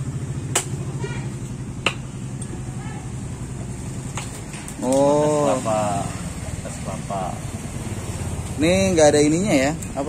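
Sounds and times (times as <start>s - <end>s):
machete chopping coconut: 0.4s - 1.0s, 1.8s - 2.2s.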